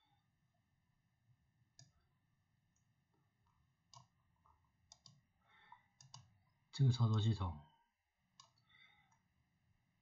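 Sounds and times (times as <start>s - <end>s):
computer mouse clicks: 1.7s - 2.1s, 2.7s - 5.3s, 6.0s - 6.4s, 8.3s - 9.3s.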